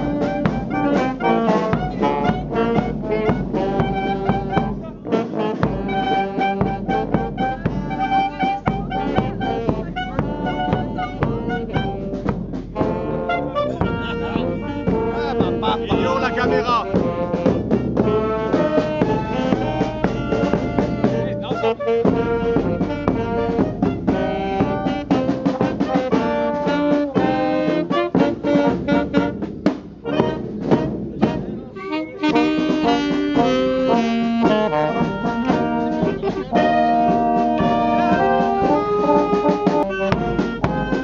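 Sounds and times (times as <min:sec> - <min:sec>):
brass instruments: 0:00.0 - 0:41.0
saxophone: 0:00.0 - 0:41.0
steady drum beat: 0:00.0 - 0:41.0.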